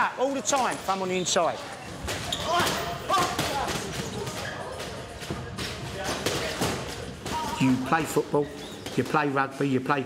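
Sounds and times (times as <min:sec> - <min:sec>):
voices in background: 0:00.0 - 0:10.0.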